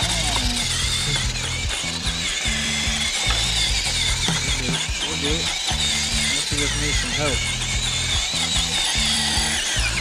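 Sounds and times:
toy truck motor whining and ratcheting: 0.0 - 10.0.

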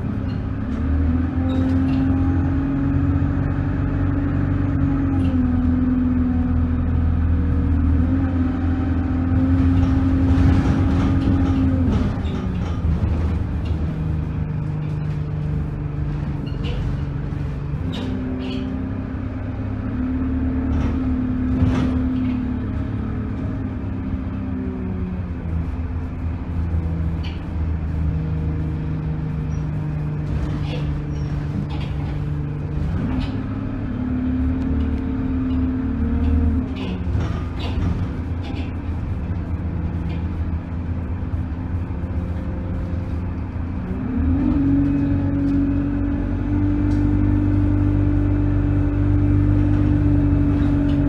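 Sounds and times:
bus engine: 0.0 - 51.0.

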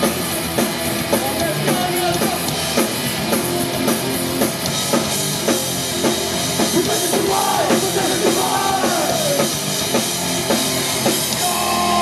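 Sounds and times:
distorted electric guitar: 0.0 - 12.0
pounding drum kit: 0.0 - 12.0.

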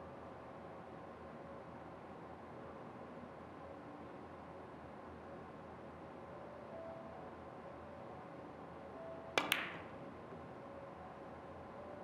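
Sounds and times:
billiard balls clicking: 9.4 - 9.8.

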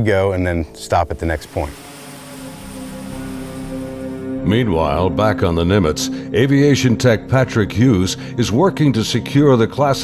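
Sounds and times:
background music: 0.0 - 10.0
turboprop engines droning: 1.2 - 8.4.

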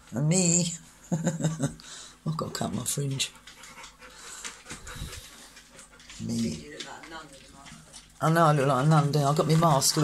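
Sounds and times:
dog panting: 3.1 - 10.0.

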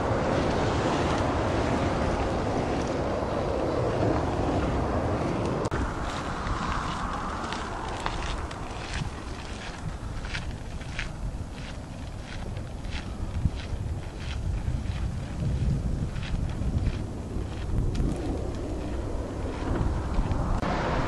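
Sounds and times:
outdoor background noise: 0.0 - 21.0
wind buffeting microphone: 0.0 - 21.0
footsteps crunching on gravel: 5.7 - 20.6.

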